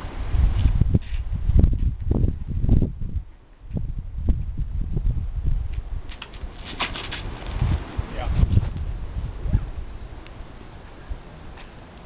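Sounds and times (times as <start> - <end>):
low rumble on microphone: 0.0 - 6.6, 7.2 - 11.6
scuffs and scrapes on concrete: 0.4 - 2.0, 5.7 - 9.5, 11.5 - 12.0.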